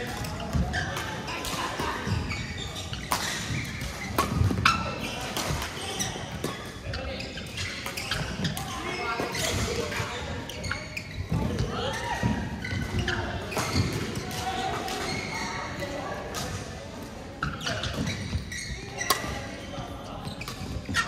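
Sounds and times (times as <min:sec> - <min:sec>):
echoing voices and chatter: 0:00.0 - 0:21.0
shoes squeaking on court: 0:00.0 - 0:21.0
racket hitting shuttlecock: 0:02.9 - 0:06.7, 0:19.0 - 0:19.4.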